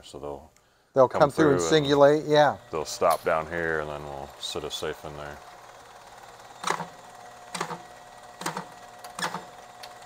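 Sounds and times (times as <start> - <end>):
faint motor hum: 0.0 - 10.0
mechanical clacks: 6.5 - 10.0.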